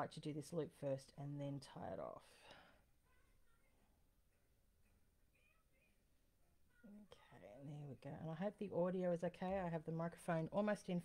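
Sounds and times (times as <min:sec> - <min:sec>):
woman speaking: 0:00.0 - 0:02.6, 0:06.9 - 0:11.0.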